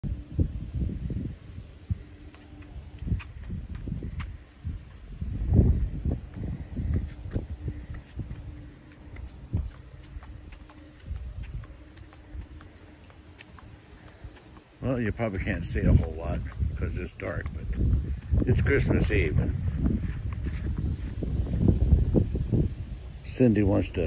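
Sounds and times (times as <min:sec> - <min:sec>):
wind and handling thumps on microphone: 0:00.0 - 0:24.0
footsteps walking: 0:02.0 - 0:23.2.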